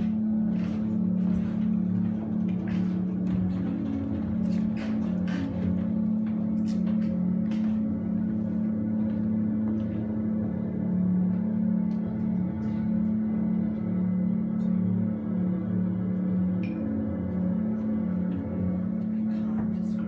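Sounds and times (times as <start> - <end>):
low steady drone: 0.0 - 20.0.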